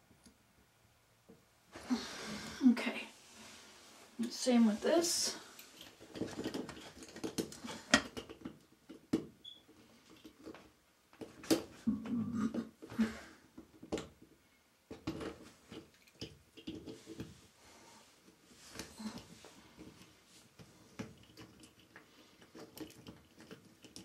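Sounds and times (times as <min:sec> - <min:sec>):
rustling of hands and clothing: 0:01.7 - 0:08.4, 0:16.7 - 0:24.0.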